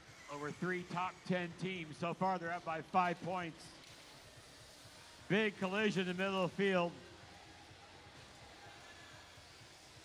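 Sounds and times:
crowded gym background noise: 0.0s - 10.0s.

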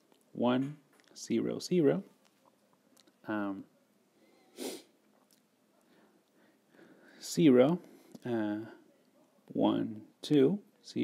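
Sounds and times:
sharp intake of breath: 4.2s - 4.9s.

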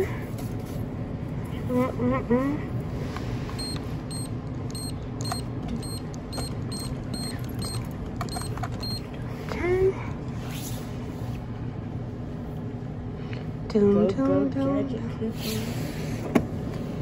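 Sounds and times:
store hum: 0.0s - 17.0s
short high electronic beeps: 3.6s - 9.0s.

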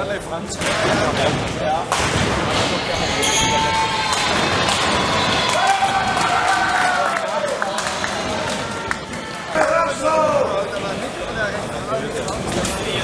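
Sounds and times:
people shouting: 3.2s - 10.5s.

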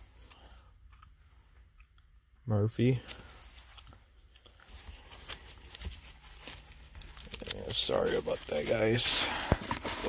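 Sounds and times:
plastic sleeves rustling and clicking: 3.1s - 10.0s.

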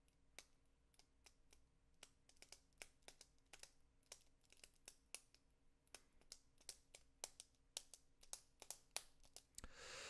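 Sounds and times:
keyboard typing: 0.3s - 9.6s.

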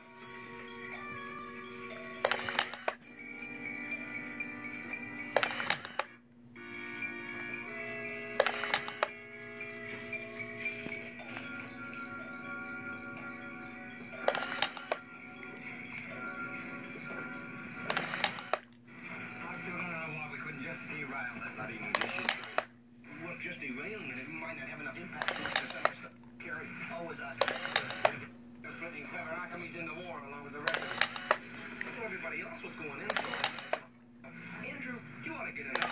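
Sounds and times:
background music: 0.0s - 18.6s
useless box switch and arm clicks: 2.1s - 3.0s, 5.3s - 6.2s, 8.4s - 9.2s, 14.2s - 16.1s, 17.8s - 18.8s, 21.9s - 22.7s, 27.4s - 28.2s, 30.7s - 31.4s, 33.0s - 33.9s.

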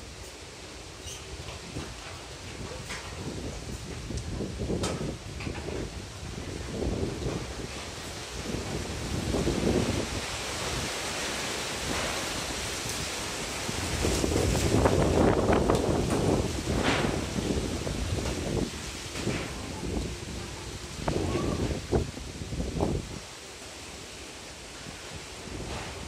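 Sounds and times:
storm wind gusting through trees: 0.0s - 26.0s
wind buffeting microphone: 1.3s - 24.0s, 24.7s - 26.0s.

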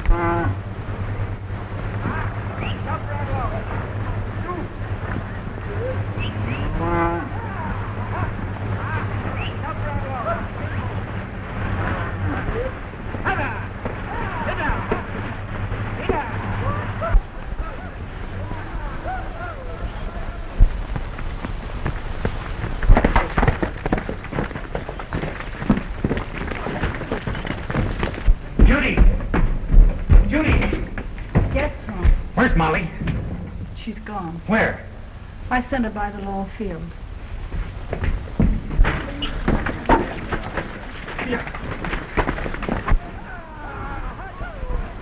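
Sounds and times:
rumble of running herd: 0.0s - 45.0s
cattle bellowing: 5.6s - 11.0s
sharp thuds and knocks: 20.6s - 33.8s, 37.4s - 43.2s.

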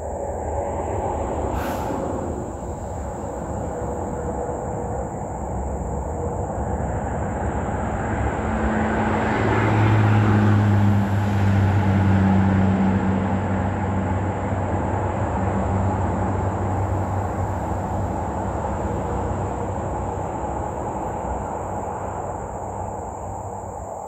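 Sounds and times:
low steady engine hum: 0.0s - 24.0s
motor vehicle rumble: 0.0s - 24.0s.

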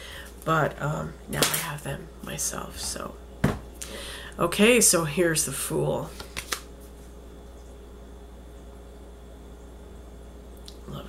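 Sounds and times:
low room hum: 0.0s - 11.0s
cards clicking: 6.2s - 6.7s.

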